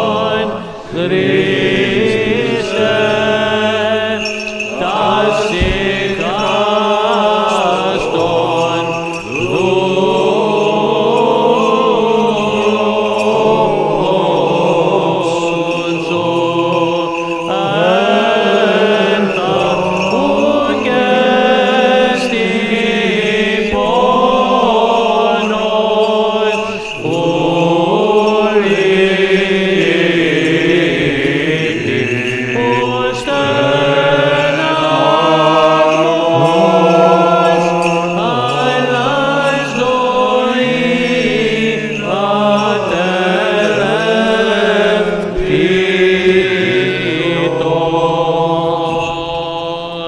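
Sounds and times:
melismatic vocal chant: 0.0 - 50.0.

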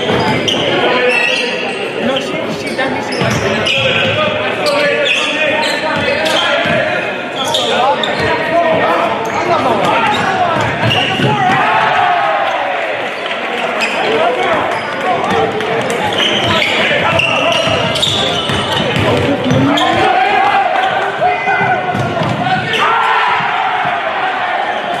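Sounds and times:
sneakers squeaking: 0.0 - 25.0
voices of players and spectators: 0.0 - 25.0.

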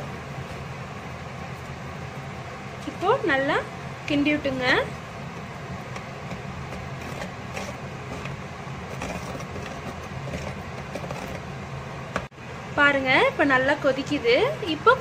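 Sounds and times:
low mechanical motor hum: 0.0 - 15.0
metal spoon scraping clay pot: 6.2 - 11.6.

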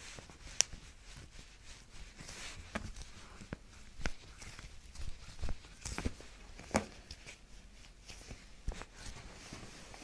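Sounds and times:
soft knocks and handling sounds: 2.1 - 10.0.

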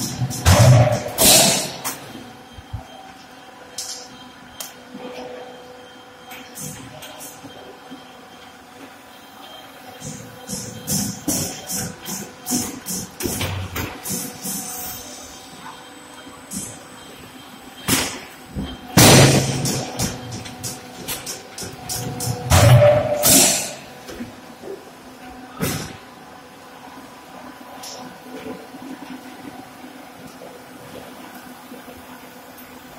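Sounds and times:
machinery hum: 0.0 - 32.9.

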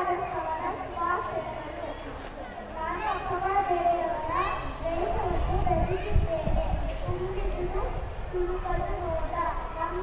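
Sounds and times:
girl speaking through microphone: 0.0 - 10.0.

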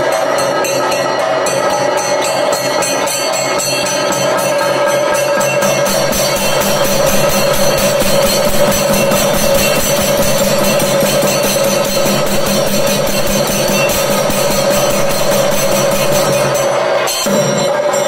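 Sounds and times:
drums beating: 0.0 - 18.0
small cymbals: 0.0 - 18.0
steady held tone: 0.0 - 18.0.

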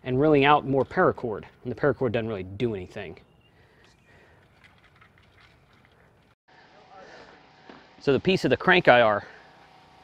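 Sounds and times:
faint outdoor background: 0.0 - 10.0.

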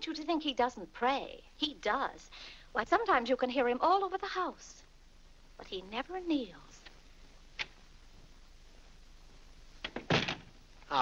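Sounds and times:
heavy door thud: 9.9 - 10.6.

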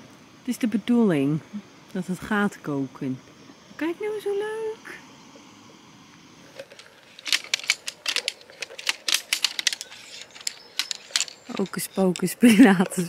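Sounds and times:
gas camping stove hissing: 0.0 - 13.0
folding chair frame clicking: 6.6 - 12.3.

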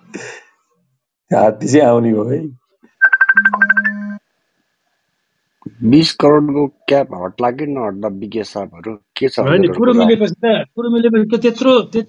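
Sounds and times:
rapid electronic beeps: 3.0 - 4.1.

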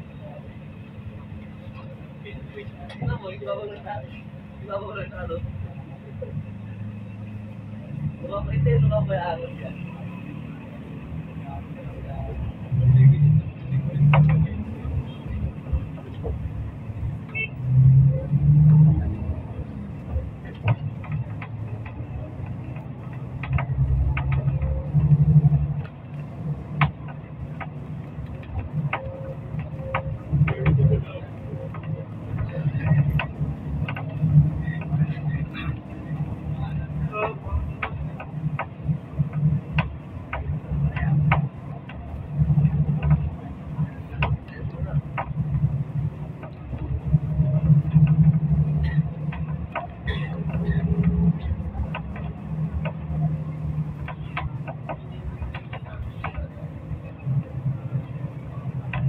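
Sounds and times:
road noise: 0.0 - 59.0
vehicle engine rumble: 0.0 - 59.0.

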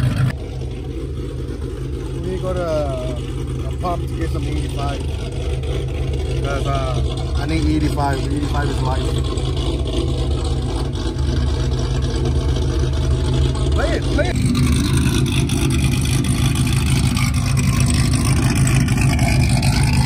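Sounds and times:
vehicle engine idling: 0.0 - 20.0.

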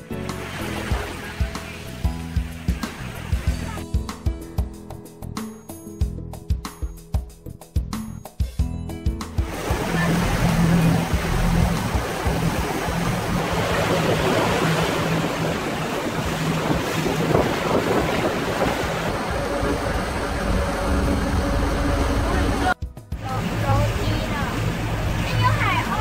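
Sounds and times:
water churning in wake: 0.0 - 3.8, 9.3 - 26.0
boat engine humming: 0.0 - 5.9, 8.7 - 26.0
wind buffeting microphone: 9.6 - 22.8.

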